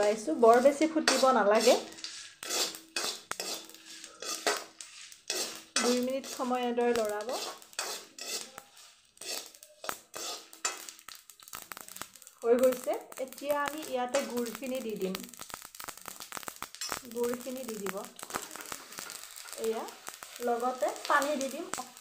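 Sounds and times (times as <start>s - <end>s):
metal ladle scraping a pan: 0.0s - 12.1s, 17.8s - 22.0s.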